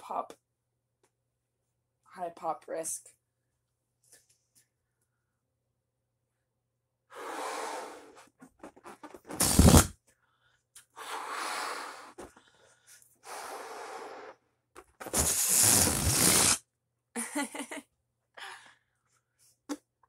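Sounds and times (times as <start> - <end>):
breath puffs into balloon: 7.1 - 8.4, 9.3 - 9.9, 11.0 - 12.4, 13.2 - 16.6.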